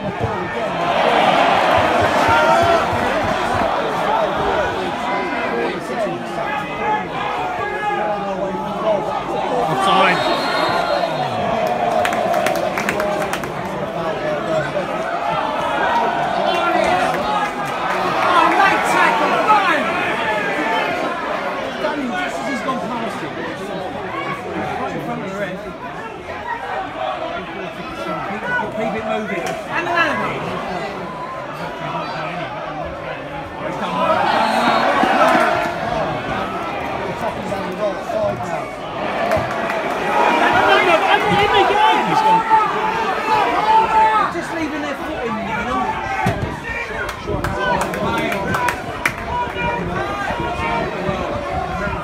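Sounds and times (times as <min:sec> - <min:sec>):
hubbub of overlapping voices: 0:00.0 - 0:52.0.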